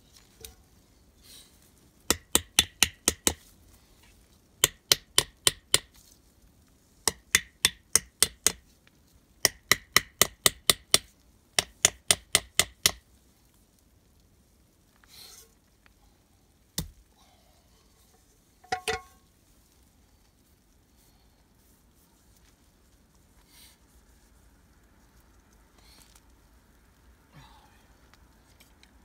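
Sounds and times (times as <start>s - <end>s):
hammer strikes: 7.1s - 8.6s, 18.6s - 19.2s.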